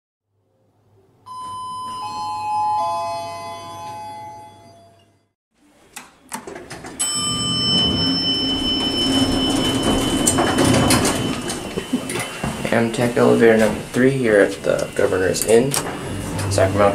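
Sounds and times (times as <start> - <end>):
elevator doors sliding open: 6.3 - 16.9
descending chime: 7.0 - 12.1
high whine: 7.1 - 16.9.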